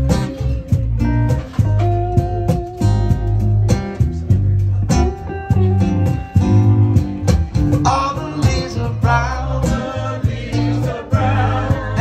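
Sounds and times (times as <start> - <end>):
acoustic guitar strumming: 0.0 - 12.0
electric guitar: 0.0 - 12.0.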